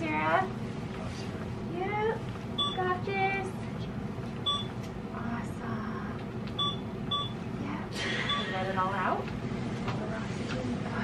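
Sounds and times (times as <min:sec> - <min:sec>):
medical equipment beeps: 0:02.6 - 0:03.0, 0:04.4 - 0:04.8, 0:06.5 - 0:07.4, 0:08.3 - 0:08.6.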